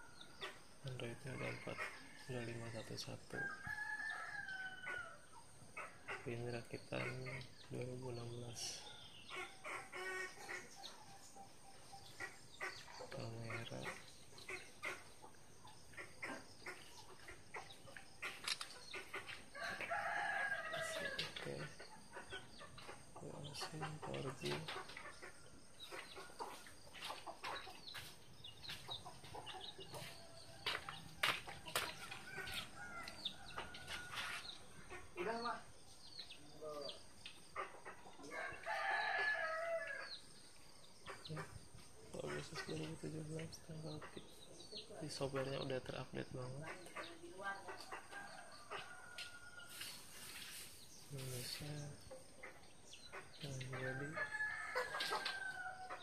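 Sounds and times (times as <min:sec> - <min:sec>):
bird calls: 0:00.0 - 0:56.0.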